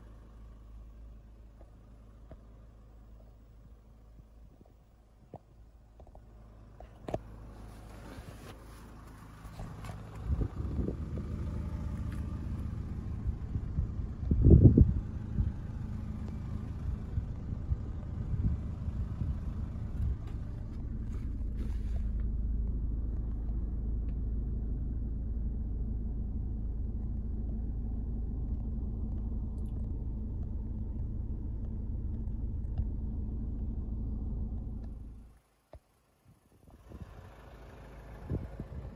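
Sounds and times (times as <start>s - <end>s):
diesel engine idling: 0.0s - 38.9s.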